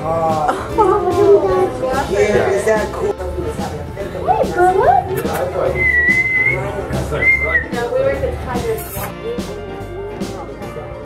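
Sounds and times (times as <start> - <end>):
laughter: 0.5 - 1.4
person whistling two notes: 5.7 - 7.8.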